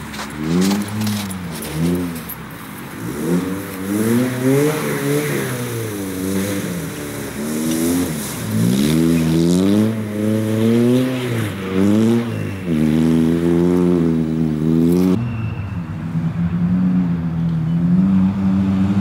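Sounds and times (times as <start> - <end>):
rally car engine accelerating: 3.0 - 15.2.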